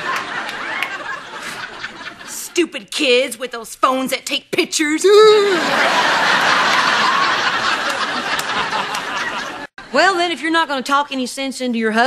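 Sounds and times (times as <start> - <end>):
studio audience laughing: 0.0 - 2.6, 5.4 - 9.8.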